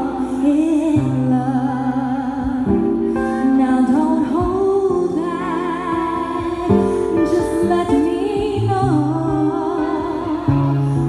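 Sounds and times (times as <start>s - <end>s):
acoustic guitar chords: 0.0s - 11.0s
woman singing: 0.0s - 11.0s.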